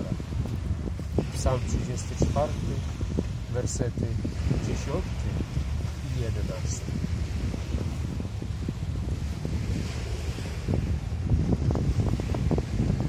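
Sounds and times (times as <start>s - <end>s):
small waves on shingle: 0.0s - 3.6s
wind buffeting microphone: 0.0s - 13.0s.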